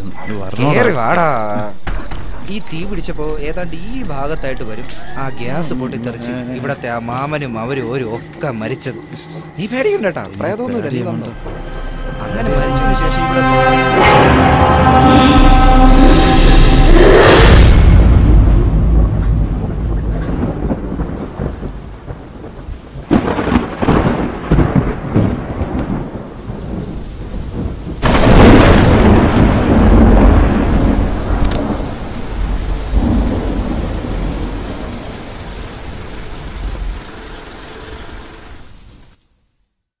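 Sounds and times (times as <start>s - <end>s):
steady rain: 0.0s - 39.9s
thunder rumbling: 11.2s - 38.9s
sharp thunder crack: 11.4s - 36.9s.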